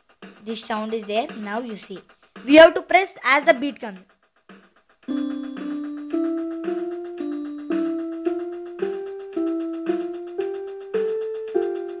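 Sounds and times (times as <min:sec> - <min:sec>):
keyboard beat: 0:00.0 - 0:12.0
electronic keyboard held notes: 0:05.1 - 0:12.0.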